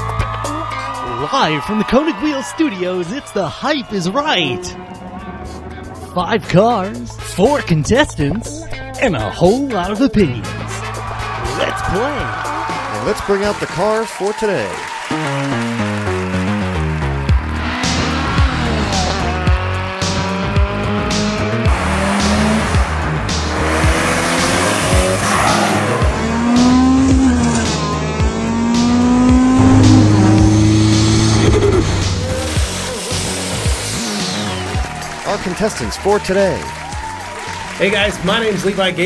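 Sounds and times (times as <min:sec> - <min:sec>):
background music with steady beat: 0:00.0 - 0:13.3, 0:15.1 - 0:39.0
sports car engines revving: 0:04.2 - 0:07.7, 0:15.4 - 0:35.2.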